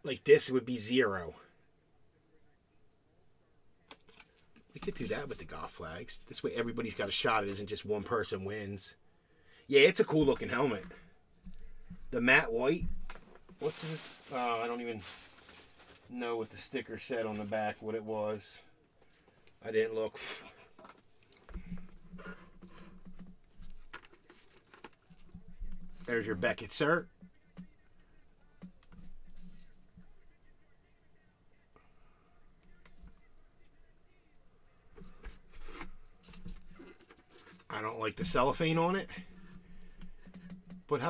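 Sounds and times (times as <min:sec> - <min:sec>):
man talking: 0:00.0 - 0:01.6, 0:04.7 - 0:09.0, 0:09.7 - 0:11.0, 0:12.1 - 0:12.9, 0:13.6 - 0:15.3, 0:16.1 - 0:18.7, 0:19.6 - 0:20.6, 0:25.2 - 0:35.2, 0:37.7 - 0:39.4
hands rubbing plastic helmet: 0:03.9 - 0:07.8, 0:10.2 - 0:16.1, 0:20.5 - 0:27.6, 0:35.0 - 0:41.0.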